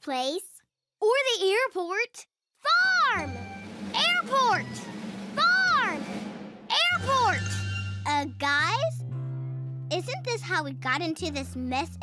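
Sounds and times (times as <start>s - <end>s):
cartoon children shouting: 2.6s - 3.3s, 5.4s - 6.0s, 6.7s - 8.2s
background music: 2.7s - 12.0s.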